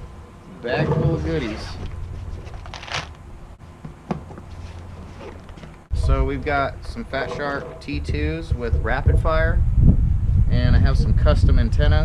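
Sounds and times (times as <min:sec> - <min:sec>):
wind rumble on microphone: 0:05.9 - 0:12.0.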